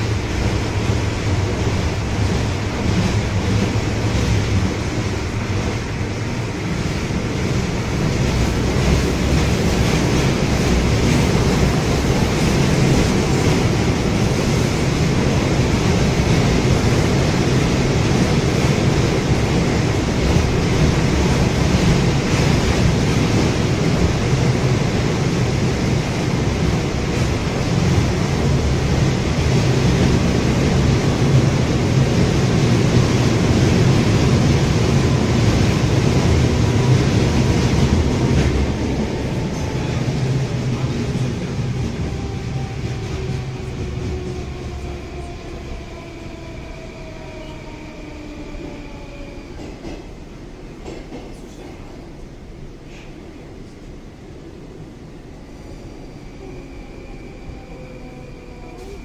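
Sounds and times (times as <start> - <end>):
train wheels rumbling on rails: 0.0 - 59.0.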